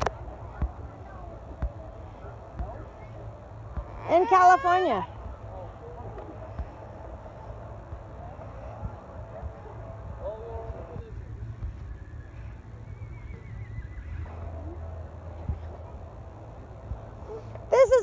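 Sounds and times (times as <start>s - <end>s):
distant voices talking: 0.0s - 18.0s
steady low rumble: 0.0s - 18.0s.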